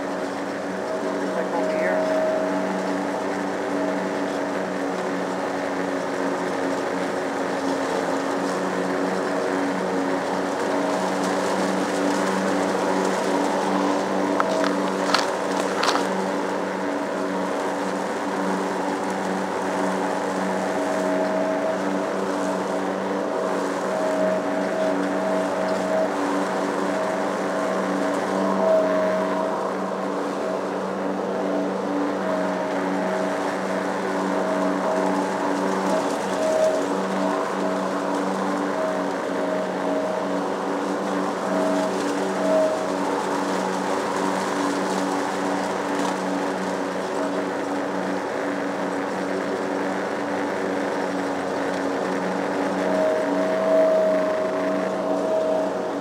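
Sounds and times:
lawn mower engine running: 0:00.0 - 0:56.0.

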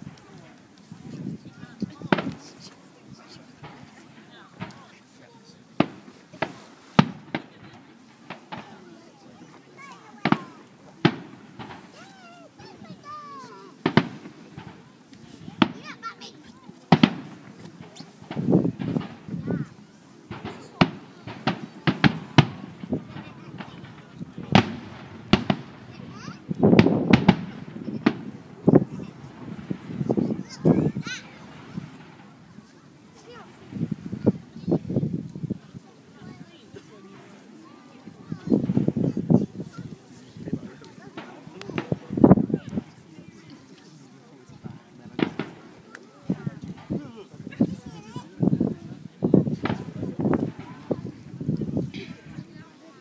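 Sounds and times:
rumbling firework volleys: 0:00.0 - 0:52.7
firework shells bursting: 0:03.6 - 0:04.9, 0:05.8 - 0:08.9, 0:10.2 - 0:16.1, 0:16.9 - 0:19.5, 0:20.3 - 0:34.4, 0:40.9 - 0:43.0, 0:45.2 - 0:47.0, 0:49.5 - 0:51.2.

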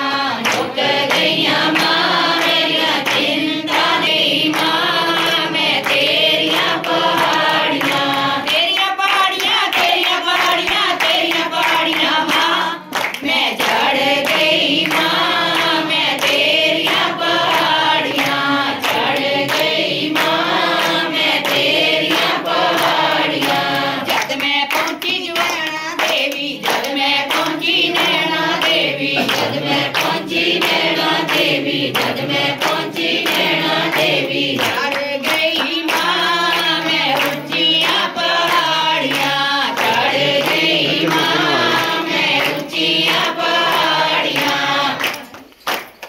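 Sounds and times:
group singing devotional song: 0:00.0 - 0:45.9
hands clapping in rhythm: 0:00.0 - 0:46.0.

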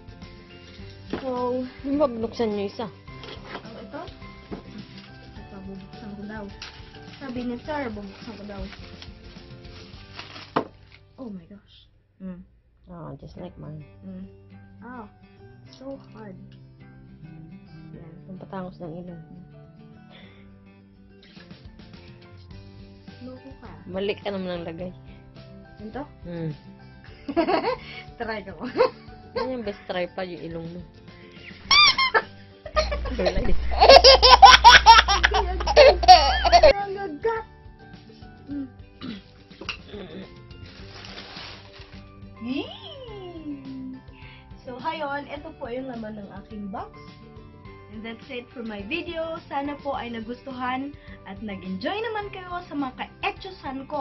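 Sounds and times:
soft background music: 0:00.0 - 0:54.0
plastic bag handling: 0:04.3 - 0:11.1, 0:40.5 - 0:42.1
woman laughing hard: 0:27.3 - 0:27.8, 0:31.7 - 0:36.8.

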